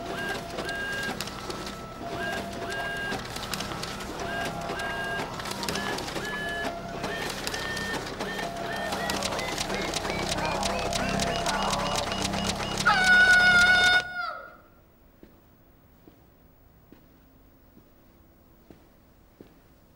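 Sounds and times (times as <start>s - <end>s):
photocopier mechanical clicking: 0.0s - 14.1s
short electronic beeps: 2.2s - 13.9s.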